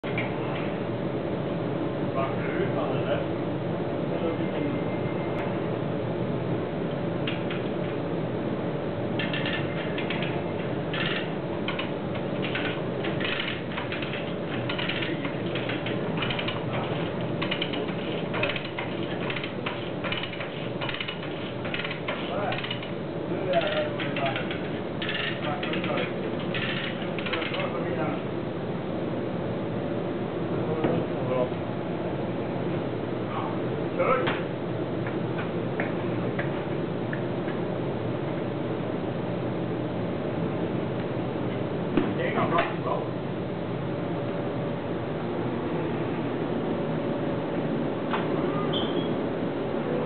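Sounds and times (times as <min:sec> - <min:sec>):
workshop hum: 0:00.0 - 0:50.0
chain hoist ratchet clicking: 0:09.2 - 0:27.8.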